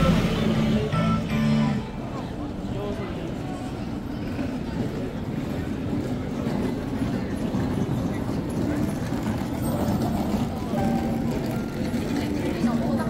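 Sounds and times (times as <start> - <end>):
low street rumble: 0.0 - 13.0
voices of passers-by: 0.0 - 13.0.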